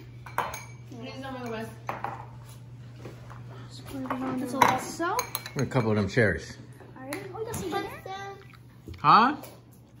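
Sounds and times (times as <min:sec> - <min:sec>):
clinks against ceramic bowl: 0:00.1 - 0:02.3, 0:04.6 - 0:06.1.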